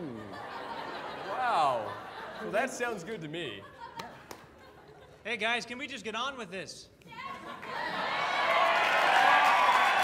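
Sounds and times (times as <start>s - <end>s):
audience applauding and cheering: 7.6s - 10.0s.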